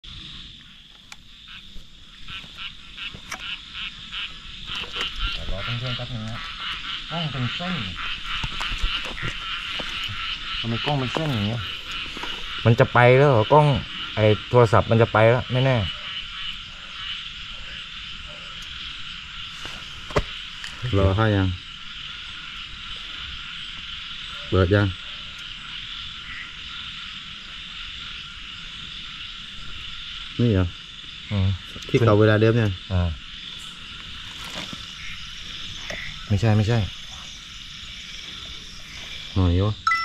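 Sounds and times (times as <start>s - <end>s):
frogs calling: 0.0s - 40.0s
insects: 0.0s - 40.0s.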